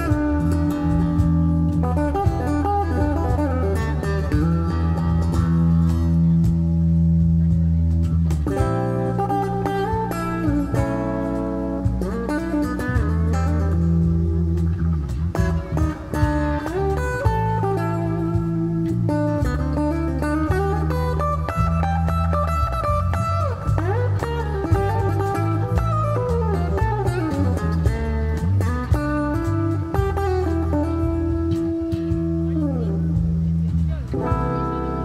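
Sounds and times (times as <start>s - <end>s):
bass: 0.0s - 35.0s
cajon: 0.0s - 35.0s
lead electric guitar: 0.0s - 35.0s.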